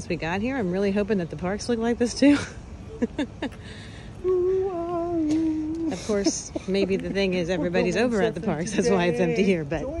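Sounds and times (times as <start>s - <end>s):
person laughing: 2.4s - 3.6s, 4.3s - 7.2s
person humming: 4.2s - 6.2s.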